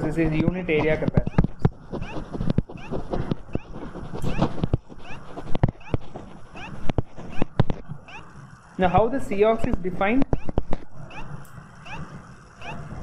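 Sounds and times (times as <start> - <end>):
stylus scratching strokes: 0.0 - 8.8, 10.2 - 13.0
stylus tapping on tablet: 9.7 - 10.9.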